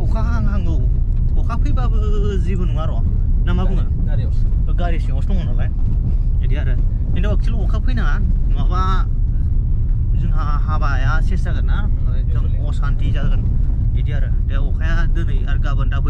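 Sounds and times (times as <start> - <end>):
people talking: 0.0 - 5.8, 6.4 - 9.1, 10.2 - 16.0
moving car rumble: 0.0 - 16.0.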